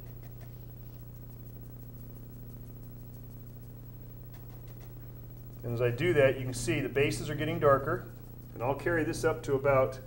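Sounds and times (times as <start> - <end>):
paintbrush dabbing: 0.0 - 10.0
steady low hum: 0.0 - 10.0.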